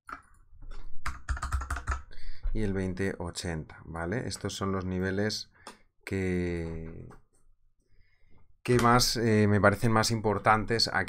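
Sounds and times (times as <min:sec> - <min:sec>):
typing on a keyboard: 0:01.0 - 0:02.2.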